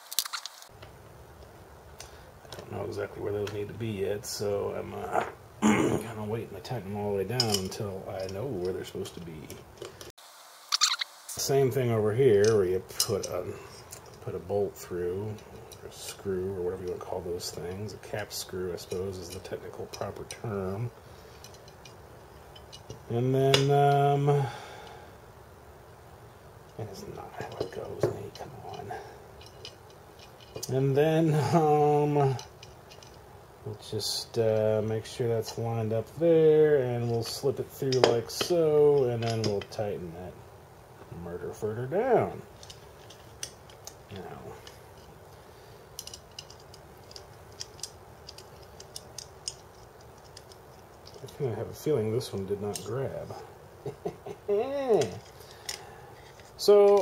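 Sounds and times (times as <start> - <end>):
small metal hardware clinking: 7.3 - 10.1, 12.3 - 18.0, 18.7 - 24.4, 26.6 - 33.3, 36.9 - 39.8, 42.4 - 57.0
small metal parts clicking: 16.8 - 24.1, 27.4 - 33.2, 37.0 - 39.8, 42.5 - 51.4, 52.6 - 57.0.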